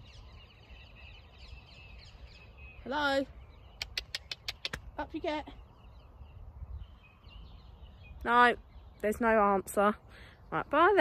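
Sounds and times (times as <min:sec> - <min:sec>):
faint birdsong: 0:00.0 - 0:11.0.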